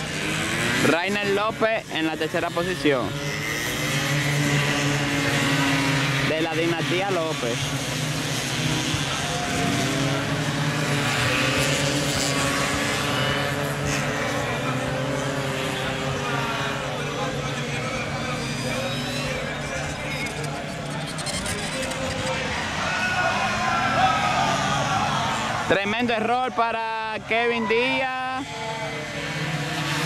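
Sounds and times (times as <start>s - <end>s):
racing scooter engines whining: 0.0s - 30.0s.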